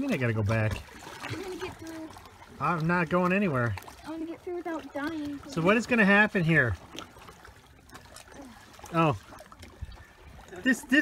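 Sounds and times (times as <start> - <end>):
small waves lapping against rock: 0.0 - 11.0.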